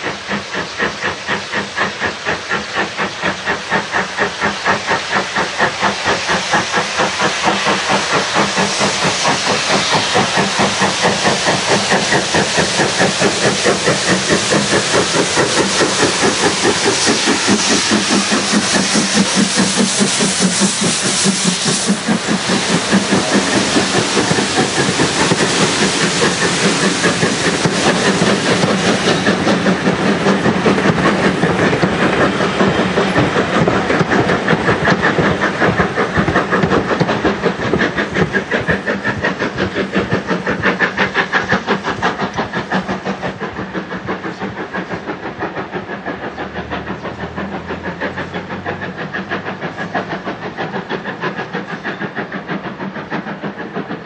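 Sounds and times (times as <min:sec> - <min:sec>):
hiss of steam: 0:00.0 - 0:54.0
steam locomotive exhaust beating: 0:00.0 - 0:54.0.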